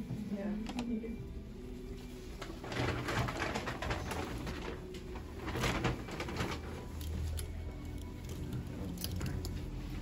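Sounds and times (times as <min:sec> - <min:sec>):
fabric rustling: 0:00.0 - 0:08.8.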